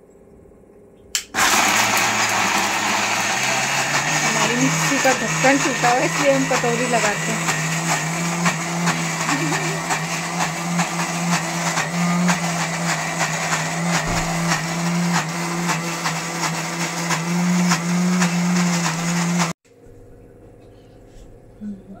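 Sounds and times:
mixer grinder motor humming: 1.2 - 19.6.

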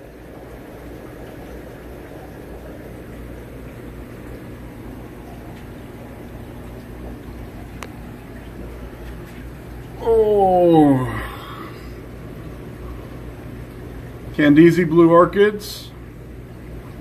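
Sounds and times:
air pumps humming: 0.0 - 17.0
aquarium aeration bubbling: 0.0 - 17.0.

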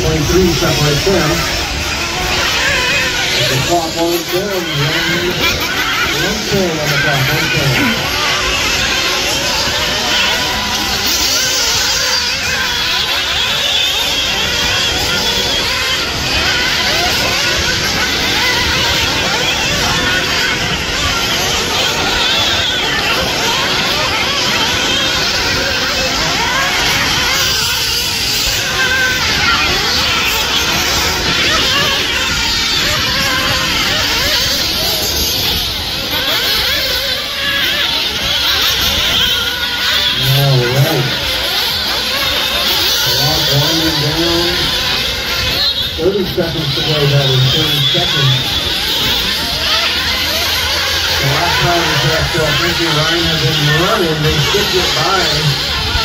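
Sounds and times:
radio-controlled buggy motors whining: 0.0 - 56.0.

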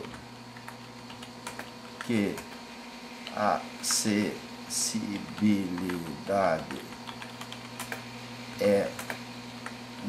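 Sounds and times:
computer keyboard keystrokes: 0.0 - 2.6, 5.0 - 10.0
steady background hum: 0.0 - 10.0.

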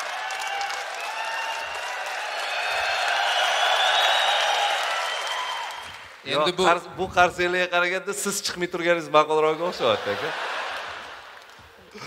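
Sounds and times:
large audience applauding: 0.0 - 6.6, 9.8 - 12.0.

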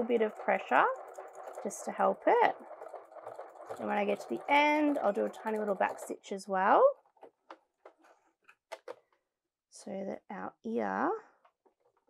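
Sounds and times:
sewing machine clicks and taps: 0.0 - 1.8, 2.6 - 6.1.

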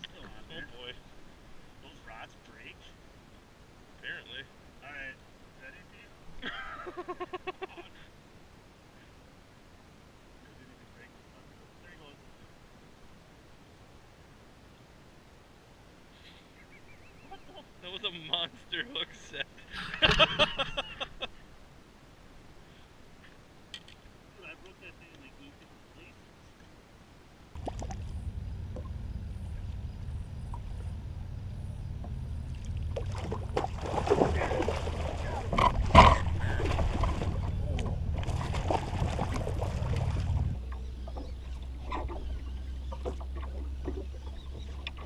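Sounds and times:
faint bird call: 16.2 - 17.6
water splashing hard: 27.6 - 28.2, 32.5 - 40.6
low rumble: 27.6 - 45.0.

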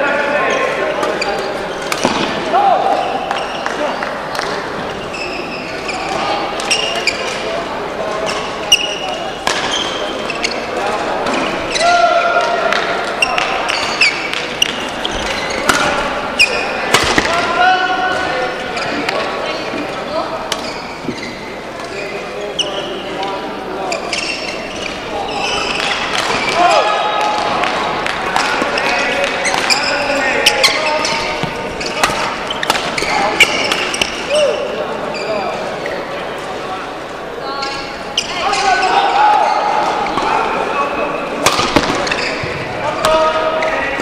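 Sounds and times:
racket hitting shuttlecock: 1.8 - 2.4, 16.9 - 17.4, 31.3 - 34.2, 41.4 - 42.2
shoe squeaks on court floor: 2.9 - 4.0, 5.0 - 7.5, 8.2 - 10.8, 13.2 - 16.7, 19.7 - 23.1, 23.8 - 26.6, 28.6 - 35.6, 37.5 - 40.2, 41.7 - 43.9.

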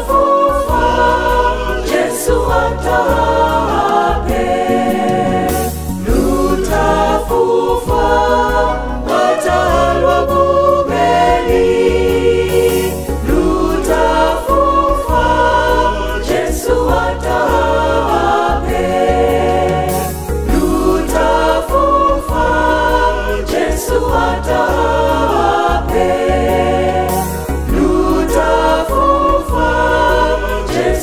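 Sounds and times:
mixed choir singing gospel: 0.0 - 31.0
deep bass line: 0.5 - 31.0.

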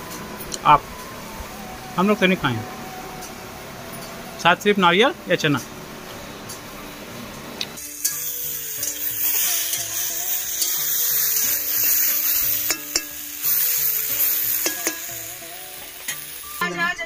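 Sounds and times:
vegetables sizzling in a wok: 5.8 - 17.0
metal spatula clinking on pan: 12.6 - 13.2, 14.6 - 15.1.

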